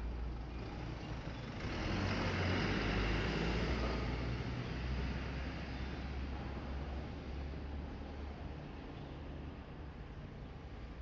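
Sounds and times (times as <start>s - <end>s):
minibus driving past: 0.0s - 8.6s.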